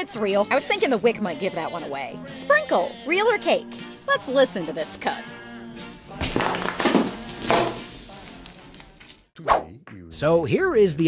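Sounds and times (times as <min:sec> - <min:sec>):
knife crunching through sprinkles: 0:06.2 - 0:09.3.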